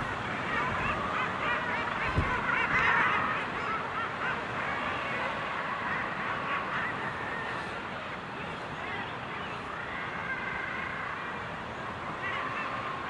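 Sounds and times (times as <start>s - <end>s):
seabird colony calling: 0.0s - 13.0s.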